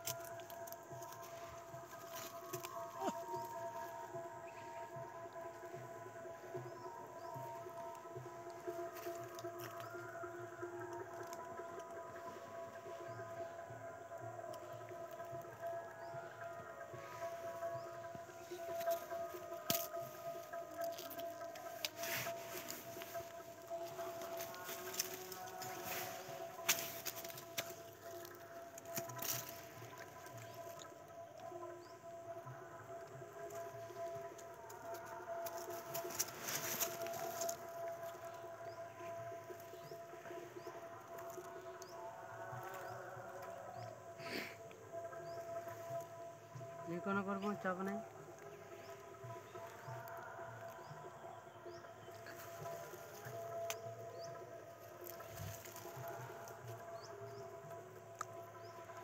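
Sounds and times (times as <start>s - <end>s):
faint outdoor background: 0.0s - 59.0s.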